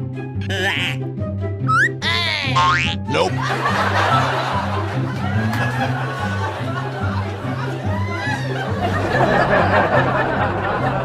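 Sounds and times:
comedic music with bass line: 0:00.0 - 0:11.0
warbling boing effect: 0:01.7 - 0:03.3
laughter: 0:03.4 - 0:11.0.

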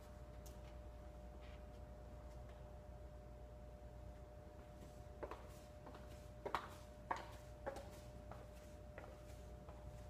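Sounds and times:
high heels clicking on tiled floor: 0:05.2 - 0:10.0.

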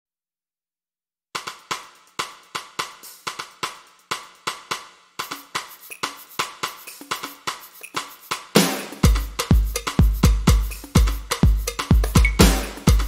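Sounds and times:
snare and hi-hat drum beat: 0:01.4 - 0:13.0.

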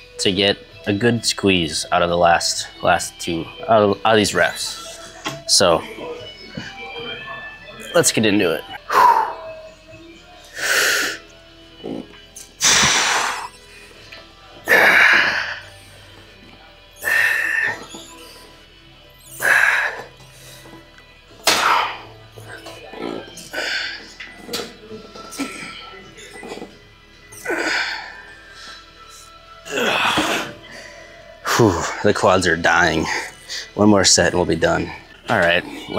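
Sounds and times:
faint background music: 0:00.0 - 0:35.9.

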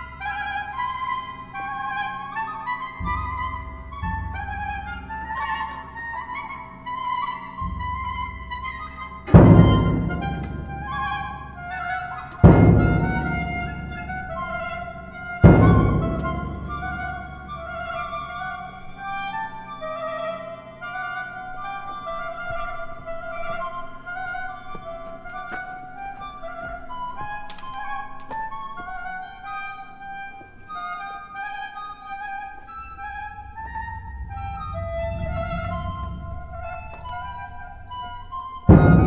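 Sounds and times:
orchestral music with high woodwind notes: 0:00.0 - 0:39.0
low rumble: 0:33.7 - 0:38.0.

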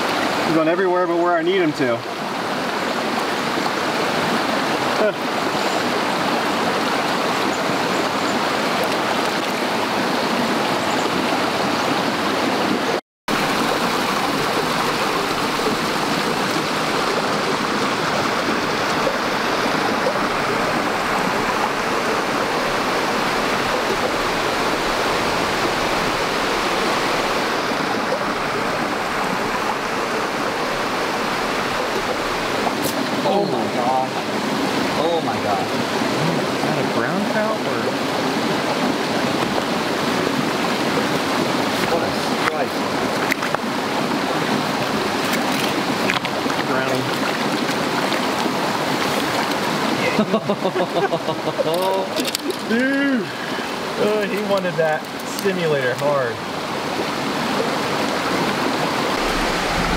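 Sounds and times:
stream rushing over rocks: 0:00.0 - 0:59.9.

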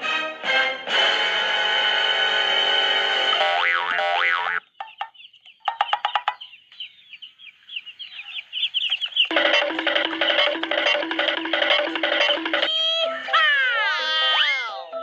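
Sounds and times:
baby chicks peeping: 0:03.3 - 0:13.1
music with warbling line: 0:09.3 - 0:15.0.

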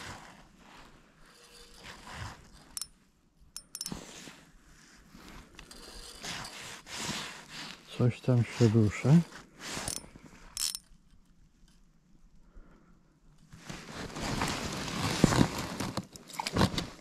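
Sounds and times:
fishing reel clicking and scraping: 0:01.3 - 0:03.0, 0:03.6 - 0:04.0, 0:05.5 - 0:06.9, 0:09.8 - 0:11.0
gloves and jacket rustling: 0:03.7 - 0:10.3, 0:13.5 - 0:17.0.

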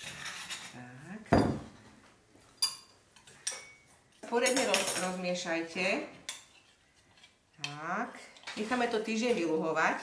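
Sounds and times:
metal spoon clinking ceramic bowl: 0:02.6 - 0:05.2.

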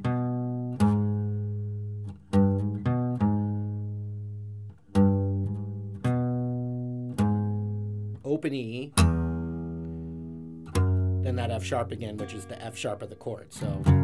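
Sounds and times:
acoustic guitar picked notes: 0:00.0 - 0:14.0.

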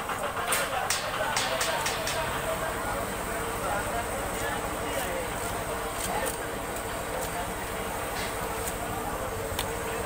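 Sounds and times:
market noise: 0:00.0 - 0:10.0.

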